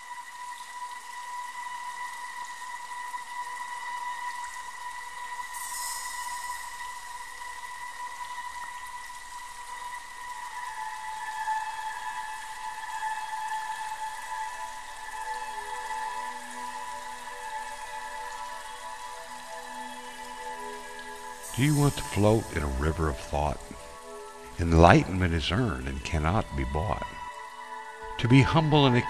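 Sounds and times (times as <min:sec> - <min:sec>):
ambient music held tones: 0:00.0 - 0:29.0.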